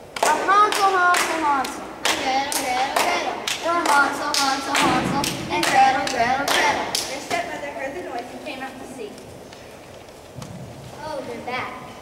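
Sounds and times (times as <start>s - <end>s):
hands clapping together: 0.1s - 7.5s
children chanting a rhyme: 0.2s - 8.1s.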